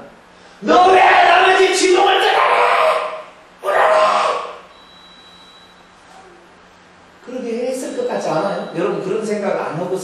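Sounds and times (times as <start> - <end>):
man speaking: 0.6 - 2.7, 7.2 - 10.0
loud vocal exclamation: 0.6 - 4.7.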